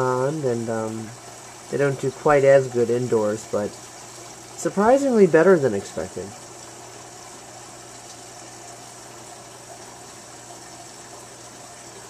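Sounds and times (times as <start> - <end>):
aquarium filter pump hum: 0.0 - 12.0
moving water: 0.0 - 12.0.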